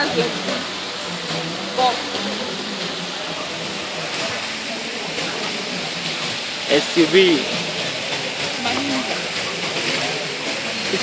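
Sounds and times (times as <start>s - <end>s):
faint voices talking: 0.0s - 11.0s.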